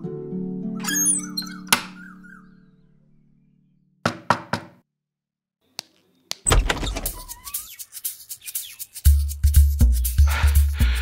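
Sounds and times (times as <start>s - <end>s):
background music: 0.0s - 3.0s, 6.6s - 11.0s
knocks on a wooden door: 4.0s - 4.8s.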